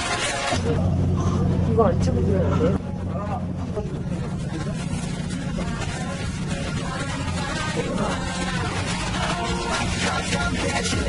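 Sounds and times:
faint voices: 0.0 - 11.0
steady low hum: 0.0 - 11.0.

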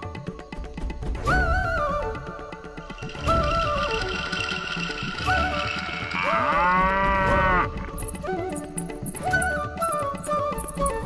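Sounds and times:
background music: 0.0 - 11.0
cow mooing: 6.1 - 7.7.

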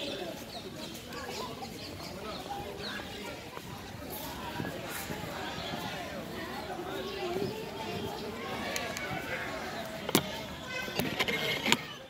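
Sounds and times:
birds chirping: 0.0 - 12.0
distant people talking: 0.0 - 12.0.

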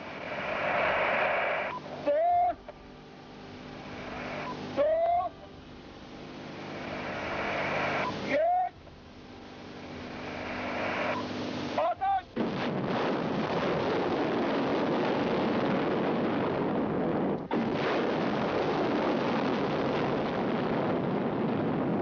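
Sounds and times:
rocket motor roar: 0.0 - 2.1, 3.7 - 4.9, 6.4 - 8.5, 9.4 - 21.8
short rising whine: 0.0 - 20.2.

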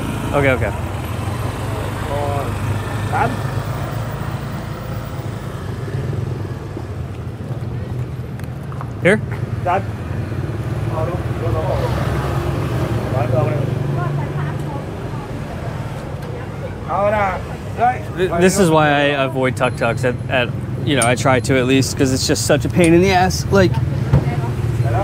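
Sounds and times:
street voices: 0.0 - 25.0
tuk-tuk engine humming: 0.0 - 25.0.

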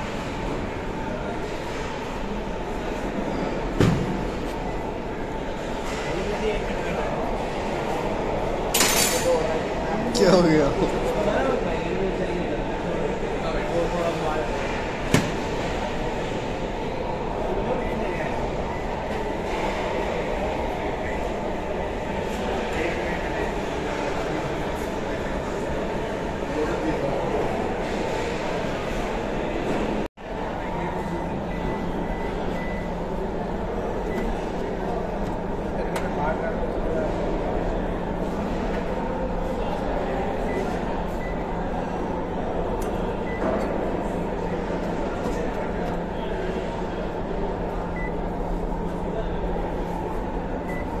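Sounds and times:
indistinct chatter: 0.0 - 51.0.

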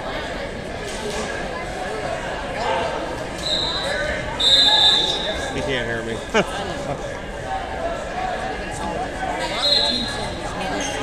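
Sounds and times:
murmur of voices: 0.0 - 11.0
referee's whistle blasts: 3.4 - 5.5, 9.5 - 10.3.

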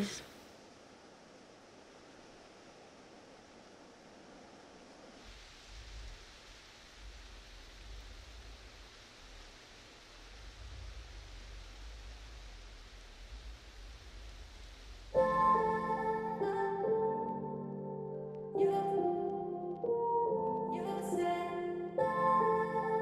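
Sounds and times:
wind in trees: 0.0 - 23.0
wind rumble on microphone: 4.8 - 15.2.

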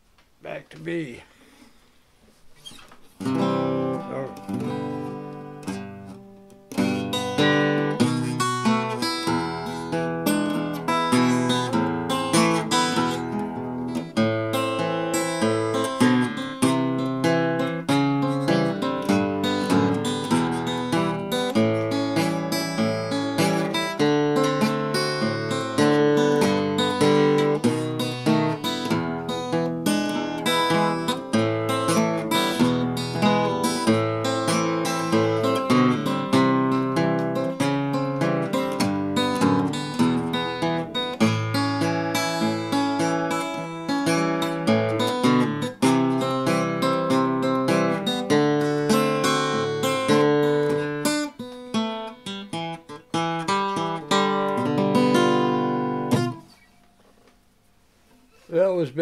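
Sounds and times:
acoustic guitar fingerpicked: 0.1 - 59.0.

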